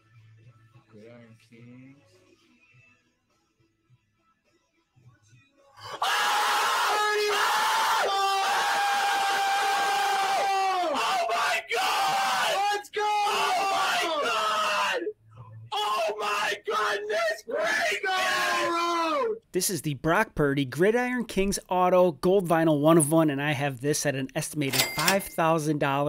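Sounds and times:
young men screaming and yelling: 5.8s - 15.1s, 15.7s - 19.4s.

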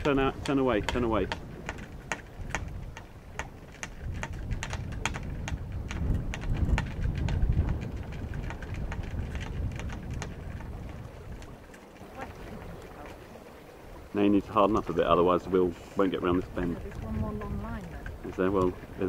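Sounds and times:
light ticks and taps: 0.0s - 7.8s
wind buffeting microphone: 0.0s - 19.0s.

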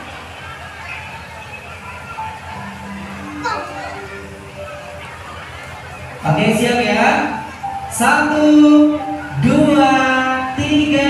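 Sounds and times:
distant voices: 0.0s - 10.6s
faint music: 0.0s - 11.0s.

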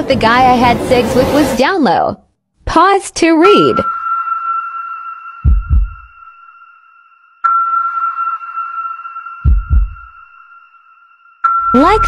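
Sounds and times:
held high tone: 3.5s - 12.0s
heartbeat thumps: 5.4s - 6.2s, 9.4s - 10.2s.

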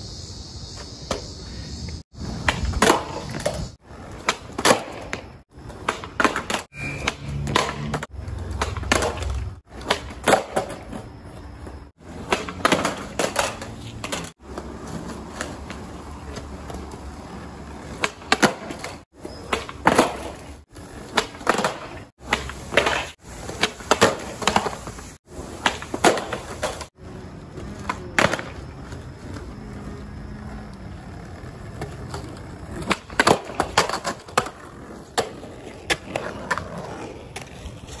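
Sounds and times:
skateboard wheels rolling on concrete: 0.0s - 38.0s
skateboard clacks: 2.4s - 38.0s.

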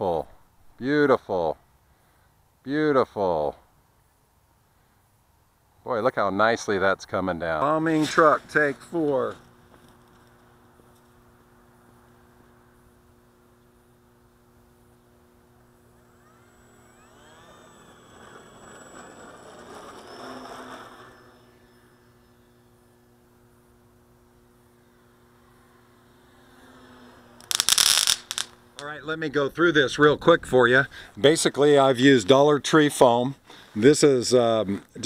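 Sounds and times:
model plane motor whining: 8.0s - 28.8s.

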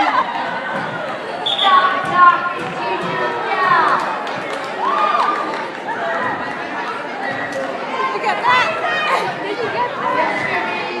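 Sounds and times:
crowd chattering: 0.0s - 11.0s.

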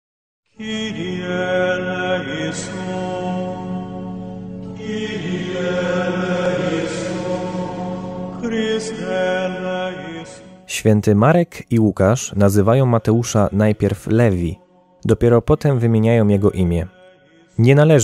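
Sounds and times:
voices chanting long notes: 0.6s - 10.6s.

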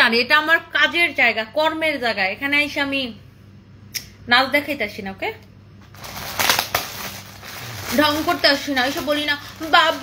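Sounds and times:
plastic packaging crinkling: 5.8s - 10.0s.

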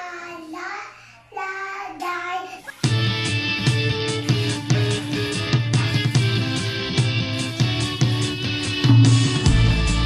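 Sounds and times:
small child singing: 0.0s - 3.1s
background music: 2.8s - 10.0s.

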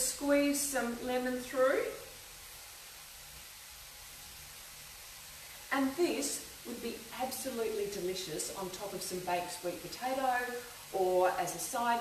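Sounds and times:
spinach sizzling in a frypan: 0.0s - 12.0s.

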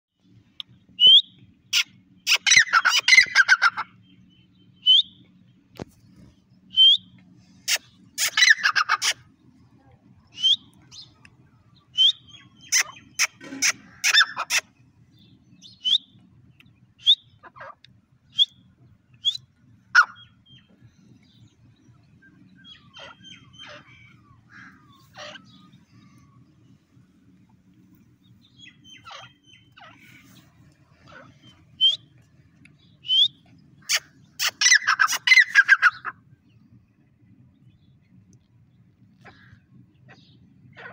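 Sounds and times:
francolin calling: 10.3s - 11.2s, 11.8s - 14.8s, 15.6s - 16.2s, 22.3s - 26.9s, 28.3s - 32.2s, 32.8s - 36.2s.

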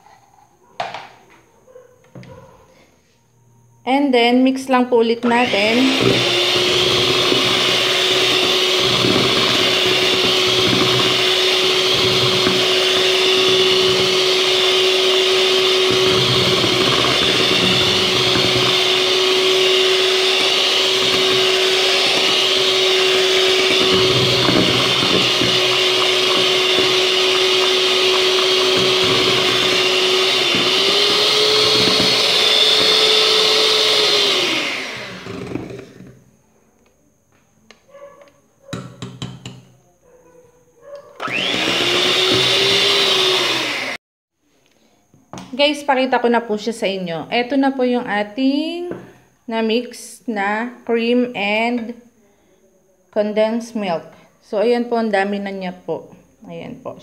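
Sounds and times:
electric hand mixer whine: 5.2s - 36.3s, 41.2s - 44.0s
beaters whipping cream in bowl: 5.3s - 36.1s, 41.2s - 44.0s.

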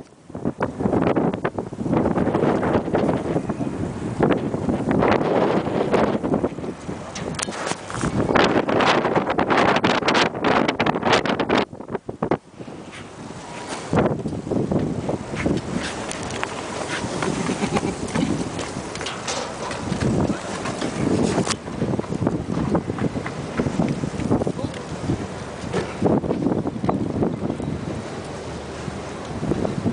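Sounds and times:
wind gusting against microphone: 0.0s - 29.9s.

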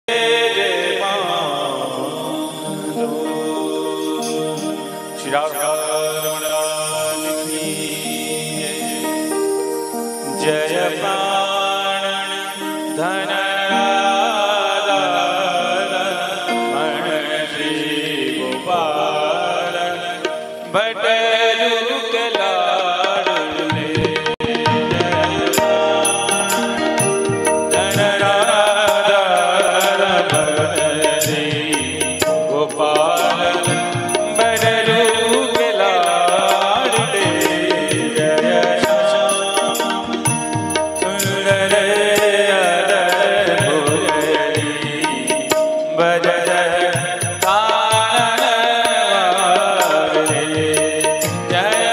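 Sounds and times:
man singing: 0.1s - 51.9s
light hand percussion: 23.0s - 51.9s
harmonium sustained notes: 24.1s - 51.9s.

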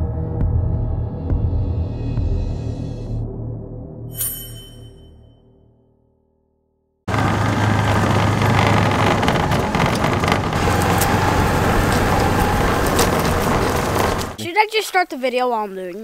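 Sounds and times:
rushing wind: 7.1s - 14.4s
utility vehicle engine drone: 7.1s - 14.4s.

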